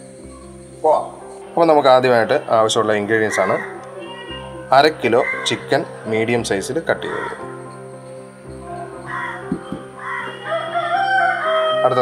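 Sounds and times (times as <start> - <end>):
background music: 0.0 - 12.0
bird long call: 2.8 - 5.7, 8.7 - 12.0.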